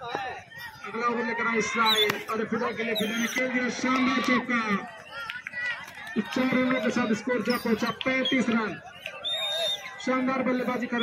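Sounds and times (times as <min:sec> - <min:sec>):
scattered voices of onlookers: 0:00.0 - 0:11.0.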